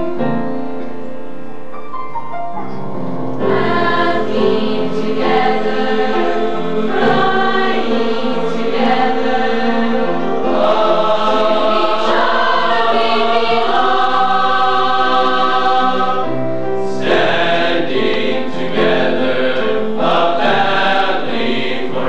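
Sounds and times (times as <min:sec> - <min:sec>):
choir singing: 0:03.4 - 0:22.0.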